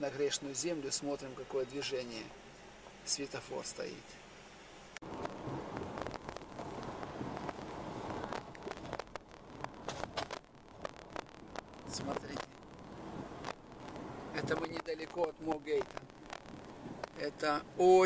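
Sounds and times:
car cabin rumbling hum: 5.0s - 17.2s.

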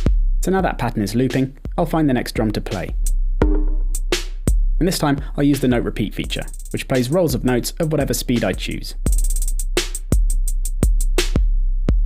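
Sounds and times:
looping drum machine pattern: 0.0s - 12.0s
kick drum hits: 3.4s - 4.6s.

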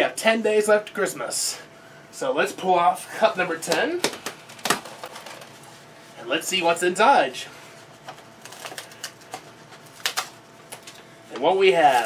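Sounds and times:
paper rustling and crinkling: 8.0s - 11.1s, 11.8s - 12.0s.

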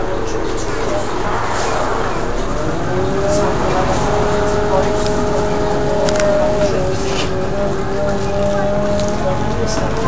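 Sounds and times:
bus engine and road noise: 0.0s - 10.0s
rising whine: 0.4s - 8.0s.

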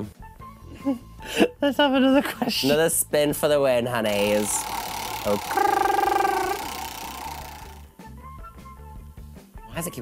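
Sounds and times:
background music: 0.0s - 10.0s
drawn-out vocal ooh: 4.6s - 7.9s.

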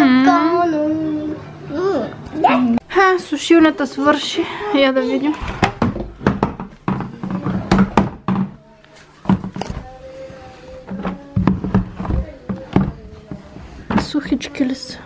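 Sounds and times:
laundry knocking and thumping: 5.4s - 8.6s, 9.2s - 9.9s, 10.8s - 14.5s.

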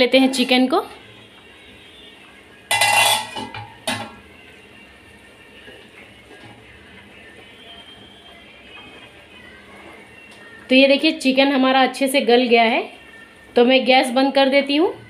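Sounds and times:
water boiling: 0.1s - 15.0s
metal cookware clanking: 2.7s - 4.2s.

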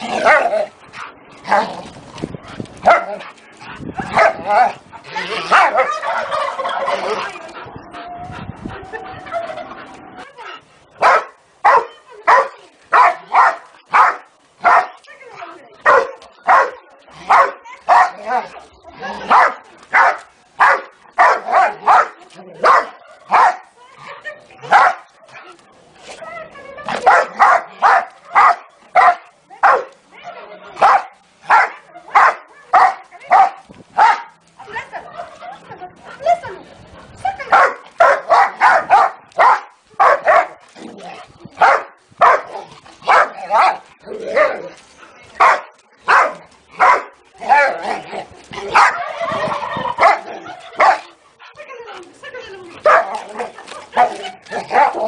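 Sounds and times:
dog barking: 2.8s - 3.1s, 11.0s - 14.9s, 15.9s - 18.2s, 19.3s - 23.6s, 24.7s - 25.1s, 26.9s - 29.9s, 30.8s - 34.3s, 37.5s - 40.6s, 41.6s - 43.8s, 45.4s - 47.1s, 48.7s - 49.0s, 52.8s - 53.2s.

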